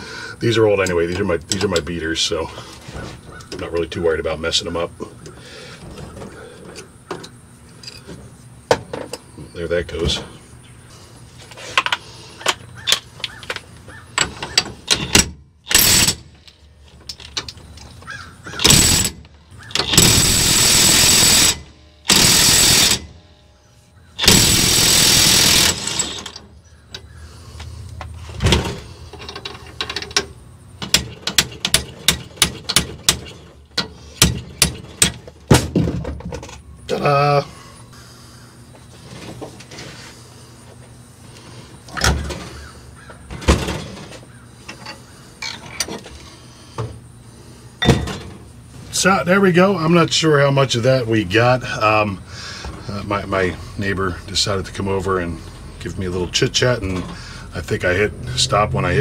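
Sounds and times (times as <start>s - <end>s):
impact wrench running: 14.3s - 16.5s, 18.6s - 23.4s, 24.2s - 26.5s
metal parts clicking and clinking: 29.0s - 33.9s.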